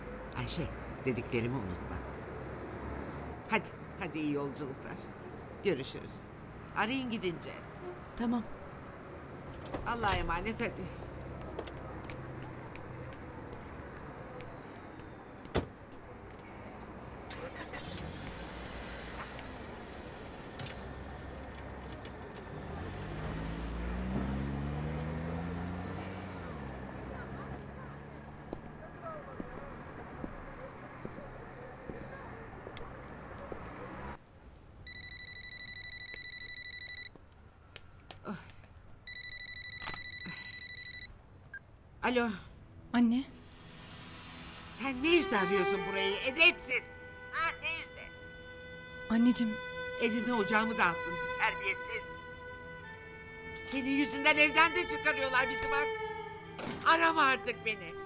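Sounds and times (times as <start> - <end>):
van engine revving: 17.4 - 28.3
telephone ringing: 34.9 - 37.2, 39.0 - 41.1.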